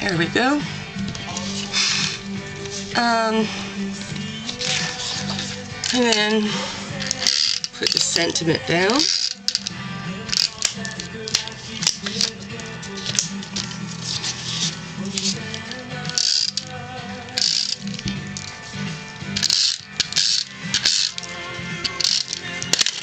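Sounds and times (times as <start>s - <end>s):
background music: 0.0s - 23.0s
tape runner rasping on paper: 4.5s - 6.2s, 11.6s - 16.6s.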